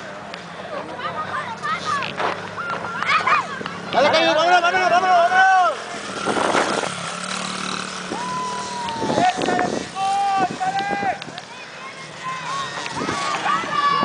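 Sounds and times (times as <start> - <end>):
spectators shouting: 1.0 - 6.3, 7.6 - 14.0
dirt bike engine revving: 3.2 - 14.0.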